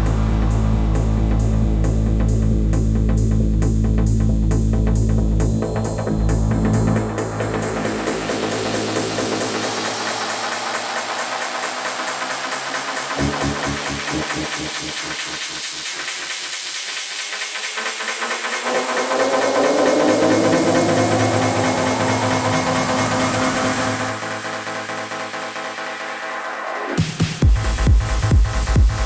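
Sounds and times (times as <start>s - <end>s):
bass: 0.0s - 29.0s
pulsing dance beat: 3.6s - 29.0s
hissing synth wash: 6.7s - 16.0s, 16.9s - 26.8s
rising synth sweep: 17.4s - 27.0s.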